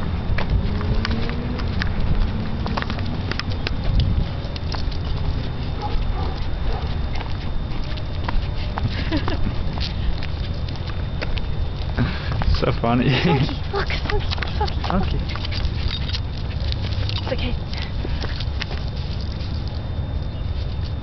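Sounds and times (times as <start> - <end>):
steady low rumble: 0.0 - 21.0
dog claws clicking on concrete: 0.4 - 12.0, 13.2 - 19.9.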